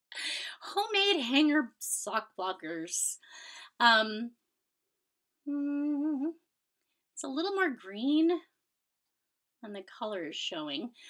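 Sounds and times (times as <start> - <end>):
woman humming: 5.5 - 6.4.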